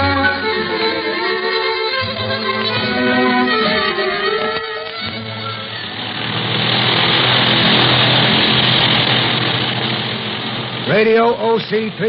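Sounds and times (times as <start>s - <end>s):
aircraft engine droning: 0.0s - 12.0s
musical bridge: 0.0s - 12.0s.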